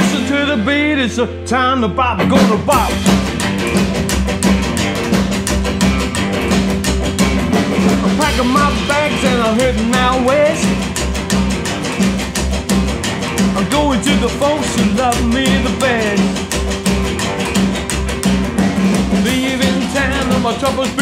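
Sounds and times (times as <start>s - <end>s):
rockabilly band playing: 0.0s - 21.0s.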